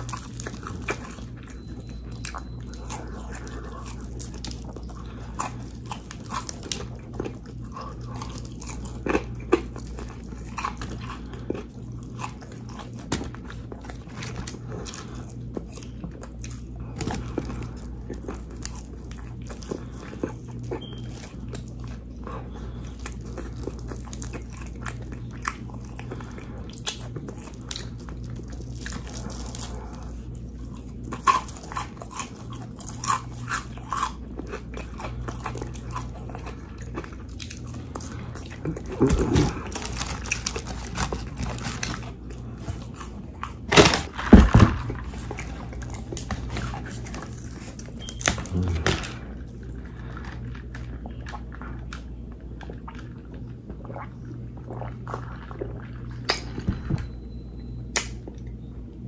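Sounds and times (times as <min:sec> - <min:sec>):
chewing crunchy fried chicken: 0:00.0 - 0:59.0
steady low hum: 0:00.0 - 0:59.0
wet mouth smacks: 0:57.9 - 0:58.2.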